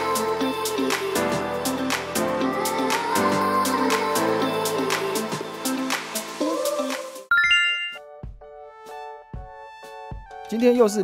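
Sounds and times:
bright rising chime: 7.3 - 8.0.

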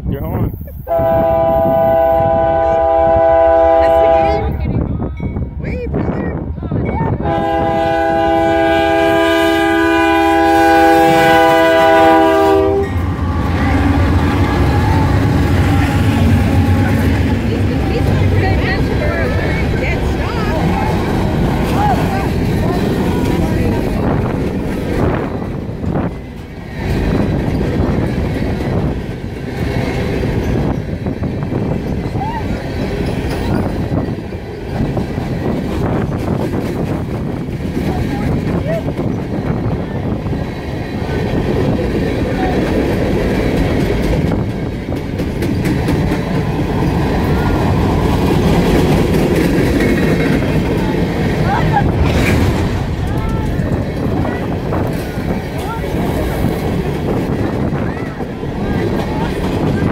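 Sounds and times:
locomotive engine rumble: 0.0 - 59.9
locomotive air horn blast: 0.9 - 4.5, 7.2 - 17.1
freight cars rolling on rails: 2.5 - 59.9.

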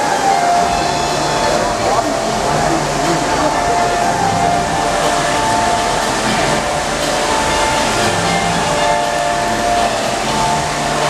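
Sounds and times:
crowded lobby noise: 0.0 - 11.0.

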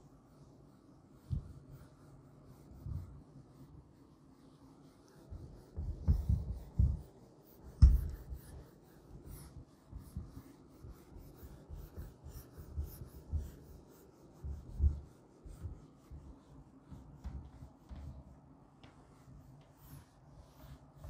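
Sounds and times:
duster rubbing on whiteboard: 0.0 - 21.0
dull thumps: 7.8 - 8.4.

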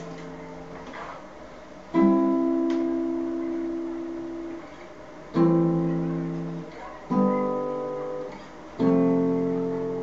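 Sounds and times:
acoustic guitar chord ringing: 1.9 - 10.0.

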